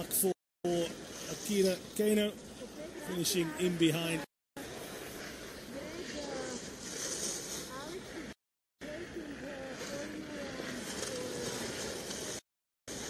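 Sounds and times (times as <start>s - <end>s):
steady rushing hiss: 0.0s - 13.0s.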